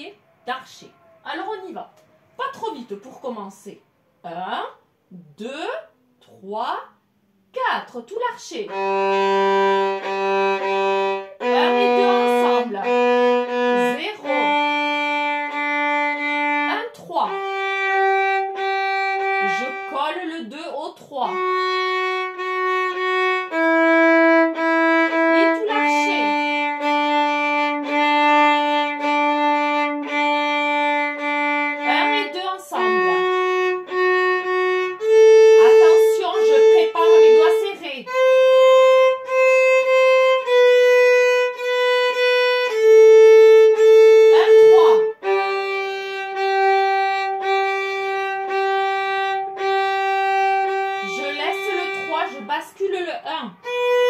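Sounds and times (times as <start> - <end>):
solo violin bowed arpeggios: 8.7 - 20.3, 21.2 - 52.6, 53.6 - 54.0.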